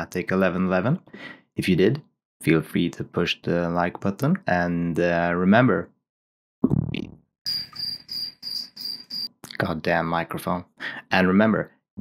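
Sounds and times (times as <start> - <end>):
cricket chirping: 7.5 - 9.3.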